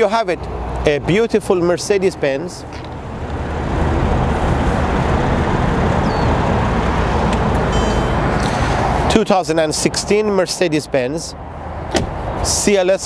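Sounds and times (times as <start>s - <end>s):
low rumble of motor vehicles: 0.0s - 13.0s.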